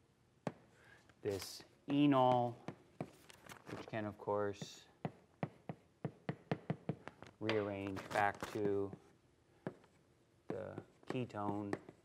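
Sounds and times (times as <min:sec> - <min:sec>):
chalk tapping on blackboard: 0:04.6 - 0:07.9, 0:08.5 - 0:12.0.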